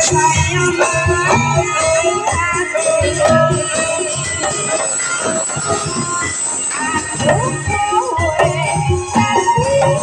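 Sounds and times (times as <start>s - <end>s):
live folk band music: 0.0s - 10.0s.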